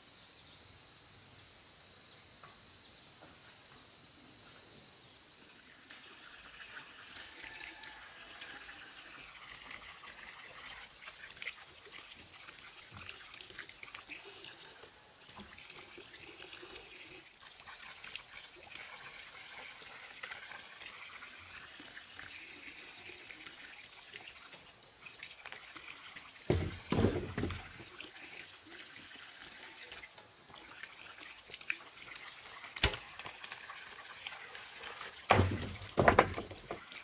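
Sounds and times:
insects droning: 0:00.0 - 0:37.0
faint trickling water: 0:05.3 - 0:37.0.

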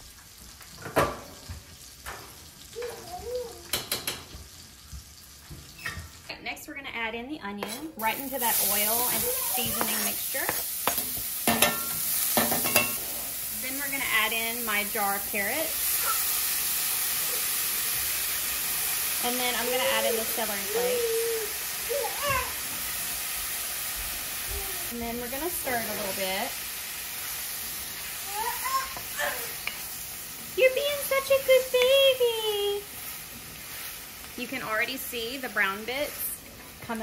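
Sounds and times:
onion sizzling in hot oil: 0:00.0 - 0:06.3, 0:07.6 - 0:37.0
wooden spoon stirring: 0:07.6 - 0:11.3.

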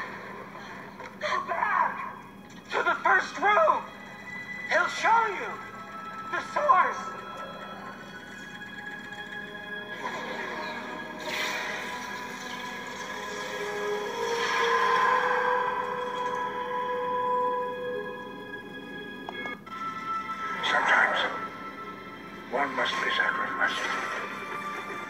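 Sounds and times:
film soundtrack from computer speaker: 0:00.0 - 0:25.0.

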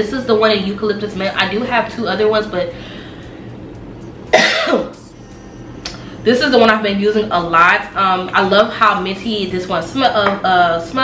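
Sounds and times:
woman coughing: 0:04.3 - 0:05.0.

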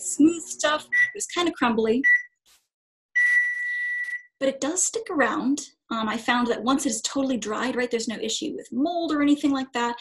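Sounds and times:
microwave oven beeping: 0:00.9 - 0:01.2, 0:02.0 - 0:02.3.

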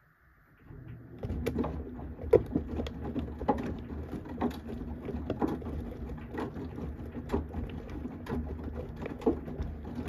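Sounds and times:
washing machine motor hum: 0:00.5 - 0:10.0
water and clothes sloshing in drum: 0:00.7 - 0:10.0.

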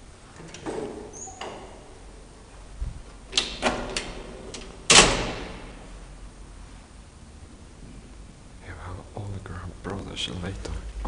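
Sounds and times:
elevator door slamming: 0:00.0 - 0:02.5, 0:03.2 - 0:06.0
elevator door clicks: 0:00.3 - 0:02.2, 0:03.1 - 0:05.8.

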